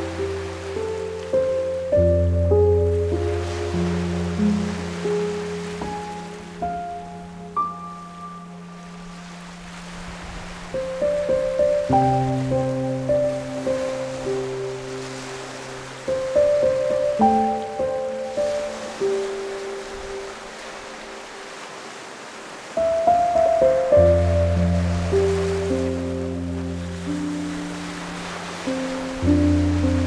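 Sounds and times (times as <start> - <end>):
small waves breaking on beach: 0.0 - 2.1, 2.7 - 7.0, 8.8 - 30.0
soft instrumental music: 0.0 - 21.6, 22.8 - 30.0.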